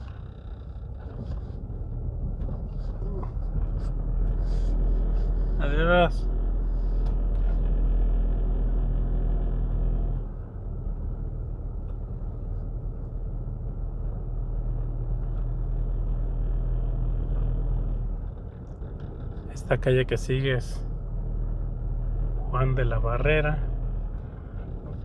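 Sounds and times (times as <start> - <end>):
car engine and road rumble: 0.0 - 25.0.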